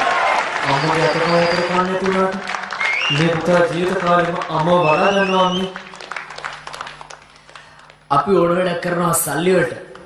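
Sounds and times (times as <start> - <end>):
faint audience clapping: 0.0 - 8.4.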